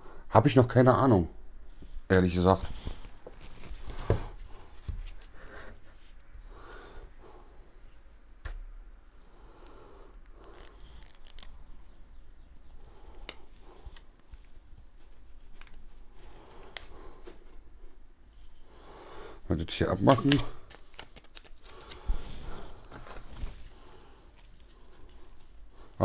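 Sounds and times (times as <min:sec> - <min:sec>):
soft rubbing of plastic: 0:01.7 - 0:06.2.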